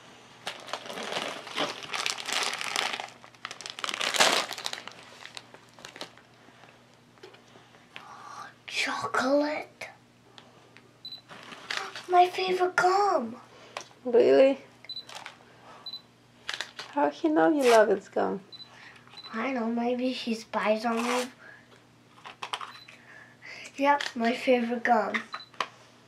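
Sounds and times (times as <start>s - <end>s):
plastic packaging crinkling: 0.4s - 6.7s, 15.0s - 15.4s, 16.4s - 17.0s.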